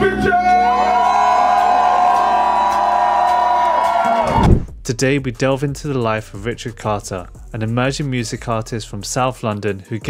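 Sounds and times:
loud final hit: 4.3s - 4.8s.

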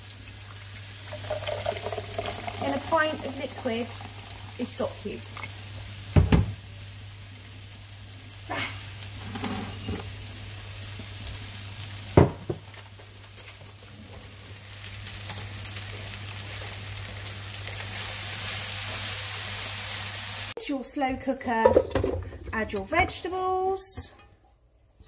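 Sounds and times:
vegetables sizzling in frying pan: 0.0s - 20.6s.

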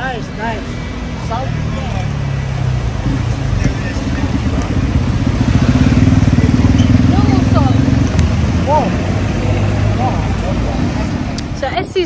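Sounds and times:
street traffic: 0.0s - 12.0s
motorcycle engine running: 0.6s - 11.8s.

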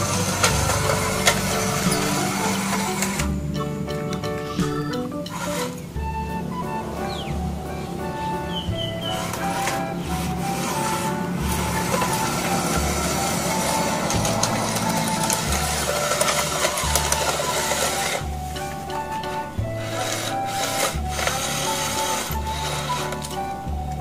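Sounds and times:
toy motors and gears whirring: 0.0s - 3.4s, 4.6s - 6.2s, 8.7s - 24.0s
background music: 0.0s - 24.0s.

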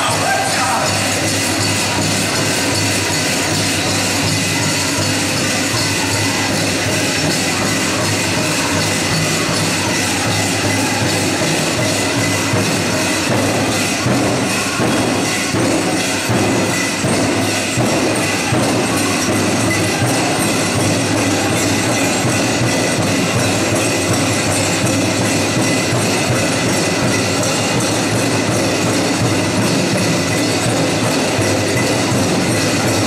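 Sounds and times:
jingle dress cones shimmering: 0.0s - 33.0s
pow wow drum song: 0.0s - 33.0s.

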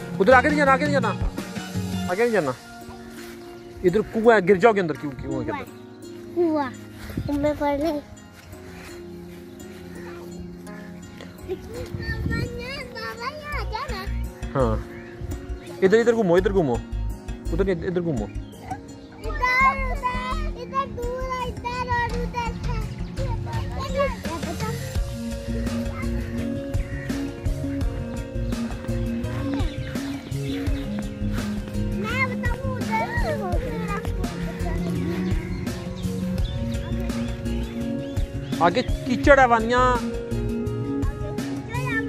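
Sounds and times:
background music: 0.0s - 42.0s.

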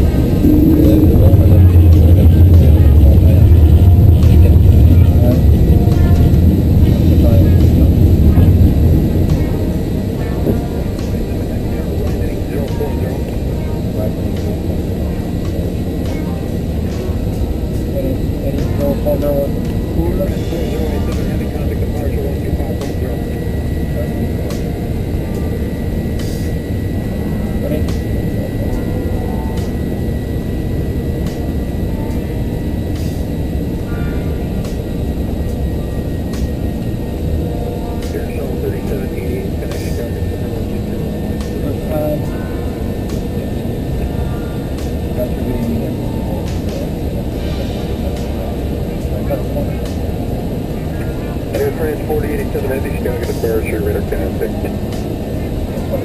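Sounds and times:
airflow rushing: 0.0s - 56.0s
jet engine noise: 0.0s - 56.0s.

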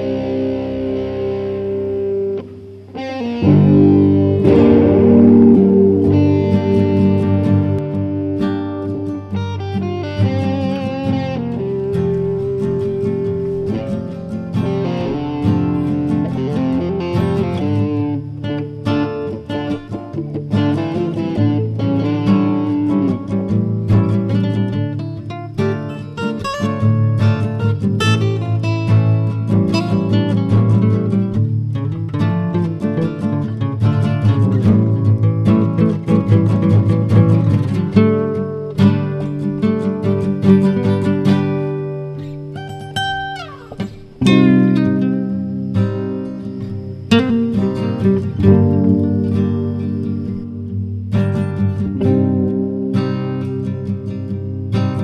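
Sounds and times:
guitar instrumental music: 0.0s - 55.0s.

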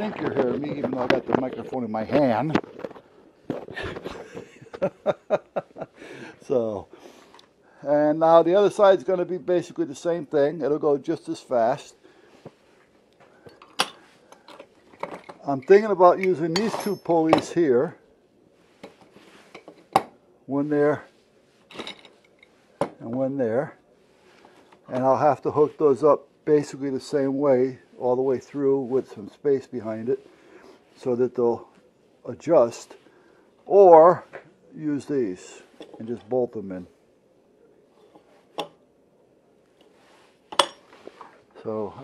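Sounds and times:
metal hardware clinking: 13.5s - 17.6s, 21.7s - 22.5s, 40.5s - 40.9s.

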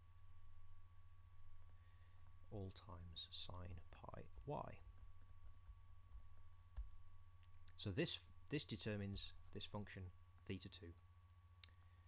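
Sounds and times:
low electrical hum: 0.0s - 12.0s
man talking: 2.5s - 4.8s, 7.8s - 11.0s
stylus tapping tablet screen: 4.4s - 7.7s.

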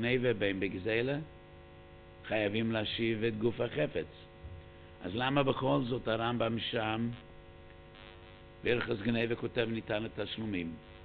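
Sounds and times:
electrical mains hum: 0.0s - 11.0s
man lecturing: 2.3s - 4.3s, 5.0s - 7.2s, 8.7s - 10.8s.

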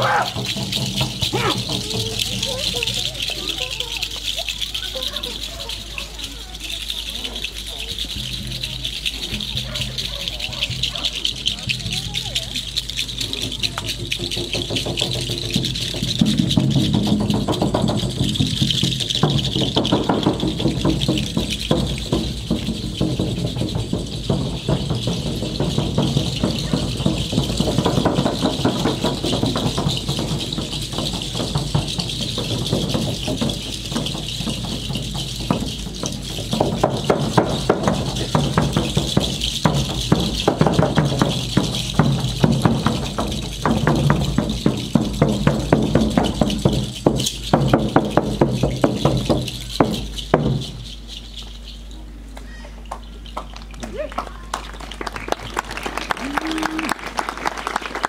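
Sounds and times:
drum beats: 0.0s - 58.0s
rattles shaken fast: 0.0s - 58.0s.

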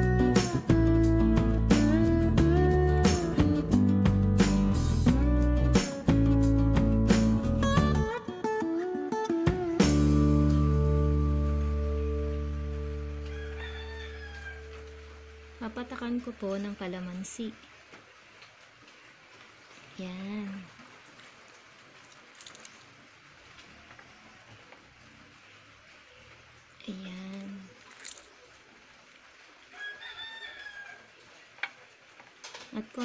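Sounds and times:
guitar music: 0.0s - 13.3s
rooster crowing faintly: 13.1s - 15.1s, 23.6s - 25.1s, 29.6s - 32.0s.

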